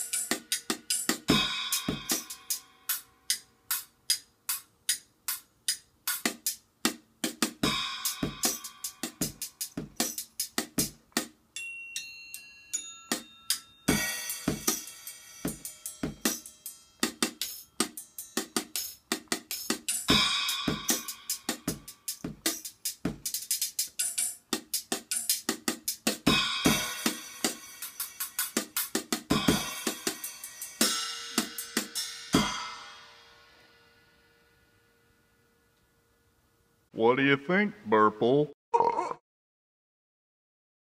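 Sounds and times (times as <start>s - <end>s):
drum strokes with sticks: 0.0s - 11.4s, 13.9s - 33.4s
ringing bell-like tones: 11.6s - 13.9s.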